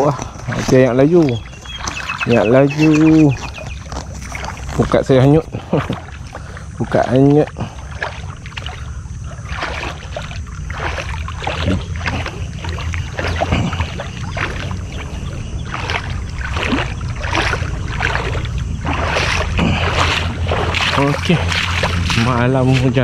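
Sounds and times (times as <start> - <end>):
footsteps through wet grass: 0.0 - 23.0
wind rumble on microphone: 0.0 - 23.0.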